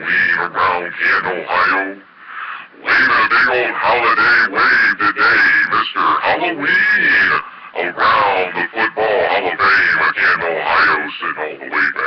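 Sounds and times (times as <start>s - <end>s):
person talking loudly: 0.0s - 2.0s, 2.8s - 12.0s.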